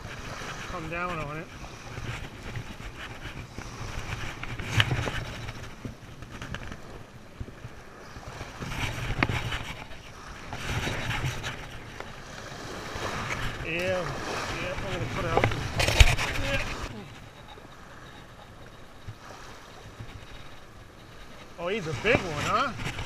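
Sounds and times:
small surf waves washing in: 0:00.0 - 0:23.0
wind rumbling on microphone: 0:00.0 - 0:23.0.

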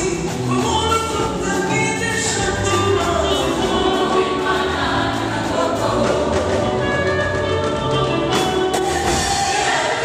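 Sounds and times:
women's choir singing: 0:03.4 - 0:10.0.

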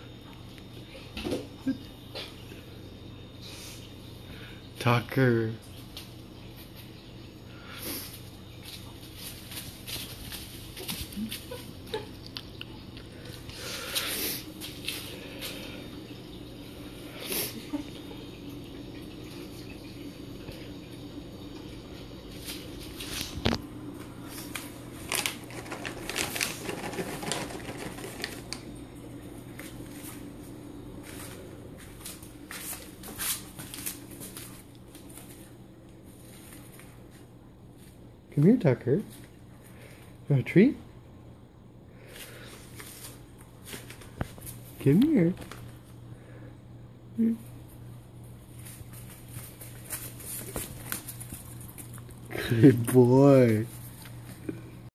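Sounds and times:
steady low hum: 0:00.0 - 0:54.9
dog footfalls on hard floor: 0:48.8 - 0:52.0.

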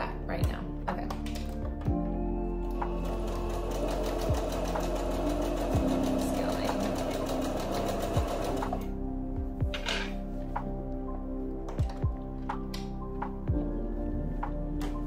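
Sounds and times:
sewing machine stitching: 0:02.9 - 0:08.9.

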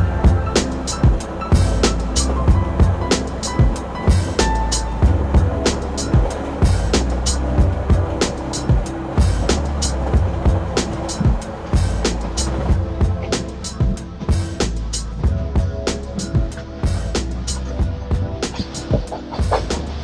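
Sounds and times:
music with drum beat and bass: 0:00.0 - 0:20.0.

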